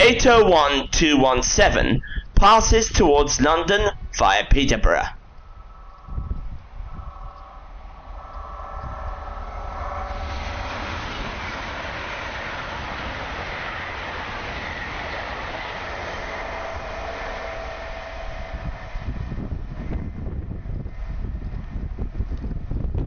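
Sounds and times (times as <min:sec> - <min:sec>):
electric train passing at speed: 0:00.0 - 0:23.0
wind on microphone: 0:05.2 - 0:23.0.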